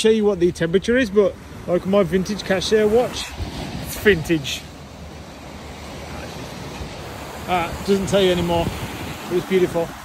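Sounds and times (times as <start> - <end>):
sea surf against rocks: 0.2 - 10.0
wind rumbling on microphone: 1.5 - 10.0.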